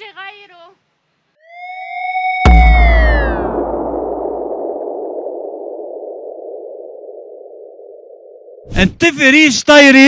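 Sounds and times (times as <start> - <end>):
muffled hiss: 0.0 - 1.4
low rumble: 2.5 - 8.6.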